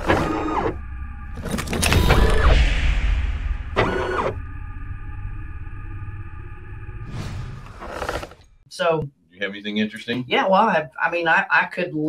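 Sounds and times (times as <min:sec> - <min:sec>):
low rumble: 0:00.8 - 0:08.6.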